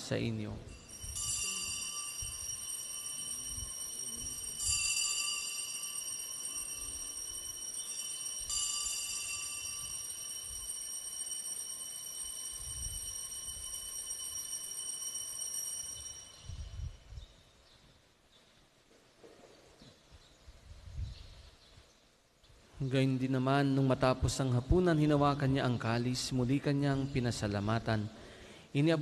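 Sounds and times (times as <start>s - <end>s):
altar bells ringing: 0.0s - 17.2s.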